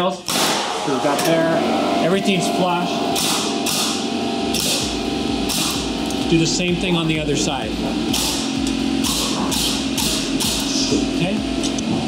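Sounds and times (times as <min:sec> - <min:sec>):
pneumatic nailer driving nails: 0:03.2 - 0:04.9, 0:05.5 - 0:05.9, 0:08.1 - 0:10.9.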